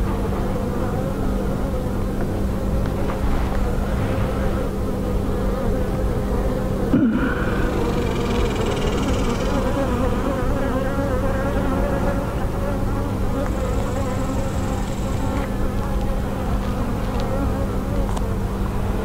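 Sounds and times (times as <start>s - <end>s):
honeybees buzzing: 0.0s - 19.0s.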